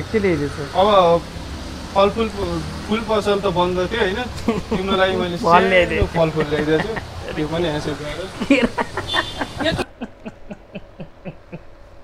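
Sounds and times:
man's held-back laughter: 4.0s - 11.7s.

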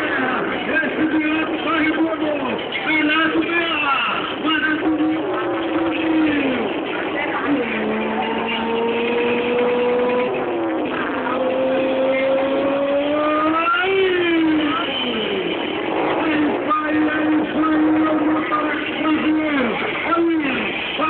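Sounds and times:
motorcycle engine revving: 4.3s - 21.0s.

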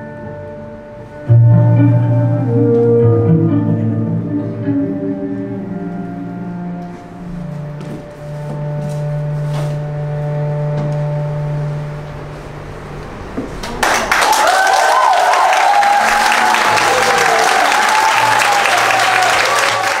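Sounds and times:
tango music: 0.0s - 13.4s
audience clapping: 13.6s - 20.0s.

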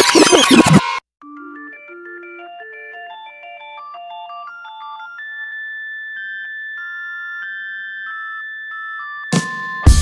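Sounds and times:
synthesizer melody: 0.0s - 5.6s.

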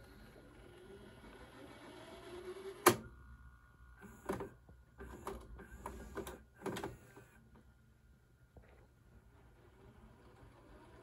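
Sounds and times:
tape reels whirring: 0.0s - 3.1s, 9.3s - 11.0s
tape deck mechanical click: 2.8s - 3.1s.

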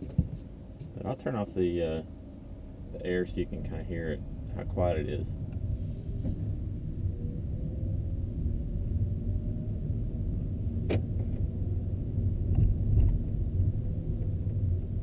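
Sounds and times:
faint thin whine: 0.0s - 15.0s
low road rumble: 0.0s - 15.0s.

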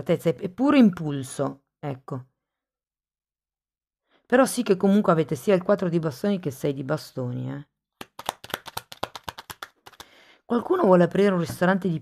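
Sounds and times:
cards being shuffled: 8.0s - 10.1s.

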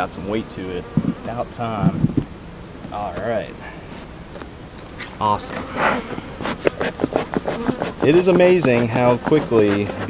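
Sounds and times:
honey bees buzzing: 0.0s - 10.0s.

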